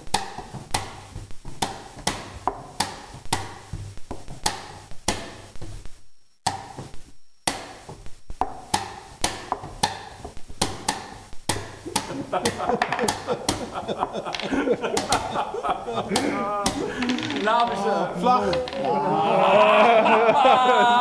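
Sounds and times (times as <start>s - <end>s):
chess pieces knocking on board: 0.0s - 5.7s, 6.5s - 17.8s, 18.5s - 19.0s
chess clock buttons slapped: 0.1s - 1.0s, 1.6s - 3.6s, 4.4s - 5.5s, 6.4s - 6.8s, 7.4s - 13.7s.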